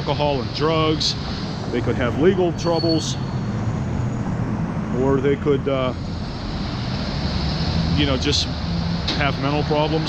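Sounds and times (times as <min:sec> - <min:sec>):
traffic rumble: 0:00.0 - 0:10.0.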